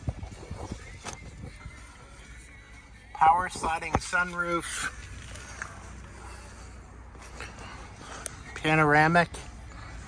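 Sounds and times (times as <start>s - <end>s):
quiet music from car radio: 0.0s - 10.0s.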